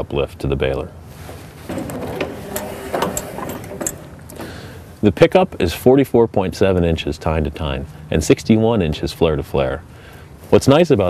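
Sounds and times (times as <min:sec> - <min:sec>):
metallic clicks and rattling: 0:01.6 - 0:04.8.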